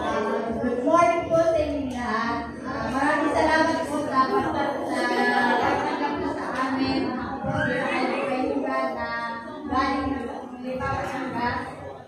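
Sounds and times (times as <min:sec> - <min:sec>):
woman talking into microphone: 0:00.0 - 0:12.0.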